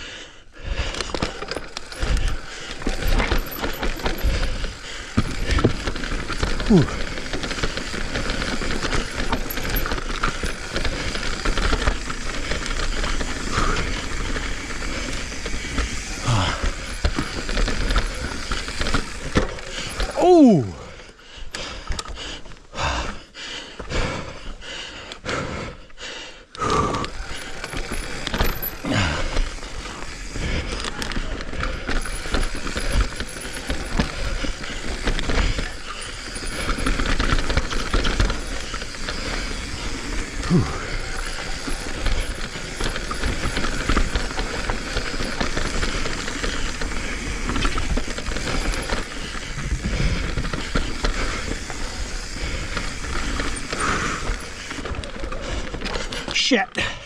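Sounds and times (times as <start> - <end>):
wind and tyre noise on dirt: 0.6 - 20.2, 26.7 - 56.4
bike knocks and rattles: 0.8 - 20.2, 26.9 - 56.4.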